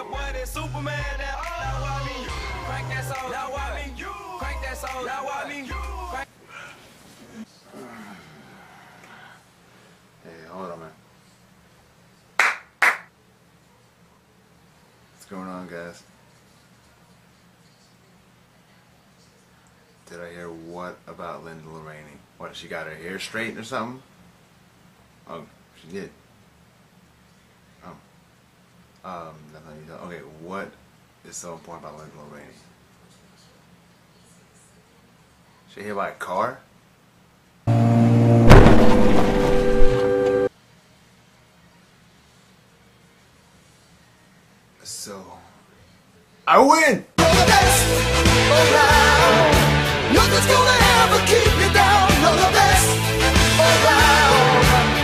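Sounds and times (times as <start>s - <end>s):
loud sharp claps: 12.4s - 13.1s
car crash: 37.7s - 40.5s
loud sustained tone: 37.7s - 40.5s.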